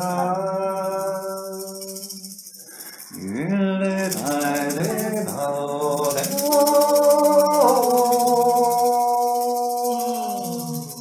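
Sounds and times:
person singing long note: 0:00.0 - 0:02.2, 0:04.1 - 0:11.0
rattle shaking: 0:00.0 - 0:11.0.

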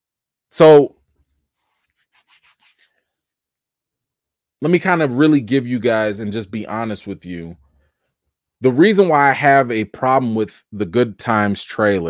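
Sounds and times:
palms rubbing together: 0:01.4 - 0:03.1.

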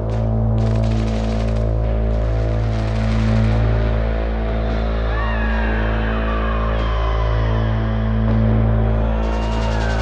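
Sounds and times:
low synth drone: 0:00.0 - 0:10.0.

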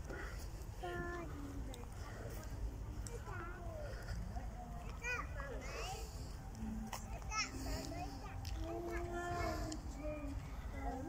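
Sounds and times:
background chatter: 0:00.0 - 0:11.0
children's voices: 0:00.0 - 0:11.0.

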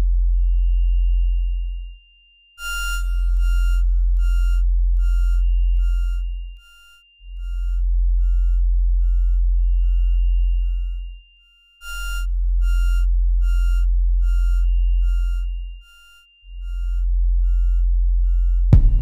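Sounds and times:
high synth beeps with echoes: 0:02.6 - 0:11.0, 0:11.8 - 0:17.8
deep synth bass note: 0:03.0 - 0:06.5, 0:07.3 - 0:11.1, 0:16.6 - 0:19.0.

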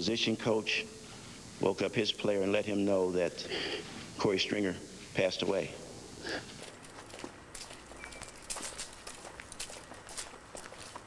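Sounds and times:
footsteps on concrete: 0:06.5 - 0:11.0.

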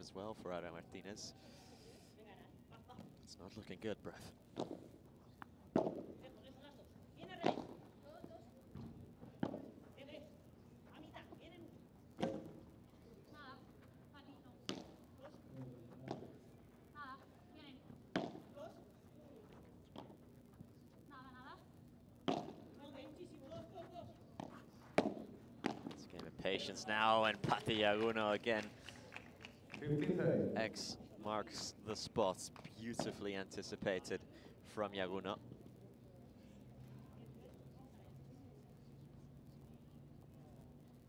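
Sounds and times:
padel ball struck by rackets: 0:05.7 - 0:06.1, 0:07.4 - 0:07.8, 0:18.1 - 0:18.5, 0:22.3 - 0:22.6, 0:24.4 - 0:26.0.

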